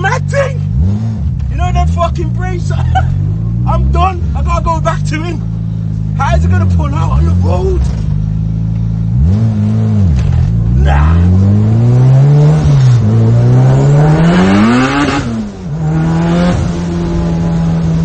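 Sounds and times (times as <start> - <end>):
car engine revving and accelerating: 0.0 - 18.0.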